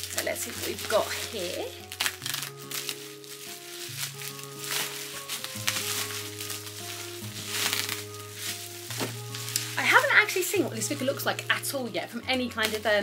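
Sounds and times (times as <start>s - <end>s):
packing tape being peeled: 0.0s - 10.4s
bubble wrap crinkling and crackling: 0.0s - 13.0s
soft background music: 0.0s - 13.0s.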